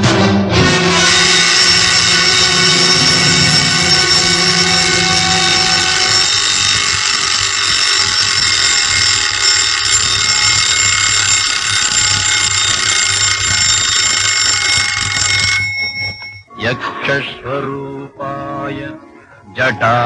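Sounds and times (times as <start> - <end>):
high alarm-like ringing: 0.9 - 16.5.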